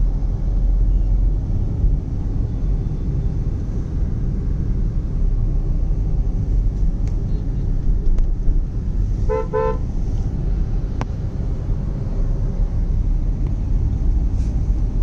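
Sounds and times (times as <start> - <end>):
car driving rumble from inside: 0.0 - 15.0
vehicle horn tooting: 9.3 - 9.8.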